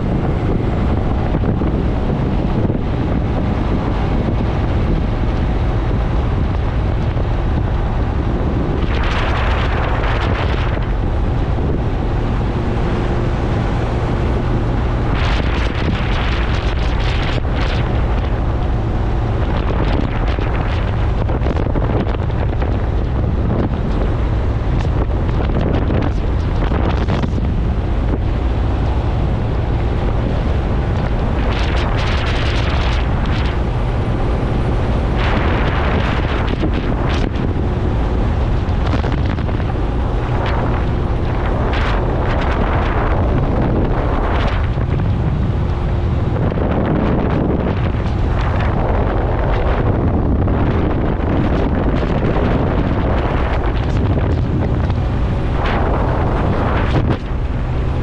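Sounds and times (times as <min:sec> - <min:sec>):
motorcycle engine cruising: 0:00.0 - 0:58.0
wind buffeting microphone: 0:00.0 - 0:58.0.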